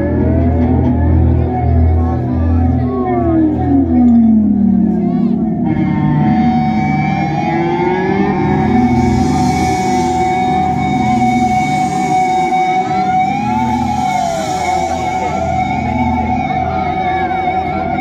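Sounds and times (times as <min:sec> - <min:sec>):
bright synth wash: 0:00.0 - 0:18.0
siren-like gliding tones: 0:00.0 - 0:18.0.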